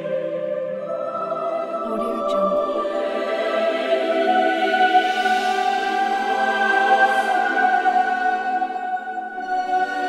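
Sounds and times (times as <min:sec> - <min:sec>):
choir holding a sustained chord: 0:00.0 - 0:10.0.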